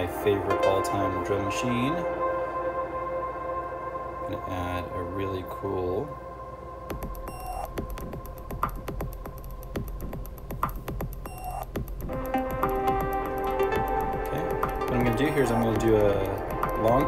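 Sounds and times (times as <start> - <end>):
sustained synth notes: 0.0 - 17.0
drum machine beat: 6.9 - 17.0.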